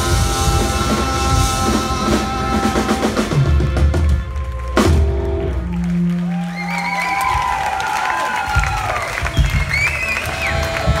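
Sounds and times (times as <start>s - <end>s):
audience cheering and applauding: 2.1s - 11.0s.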